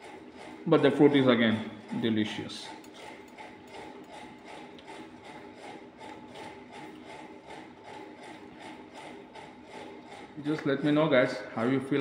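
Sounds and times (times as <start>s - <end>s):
machine running with ticking: 0.0s - 12.0s.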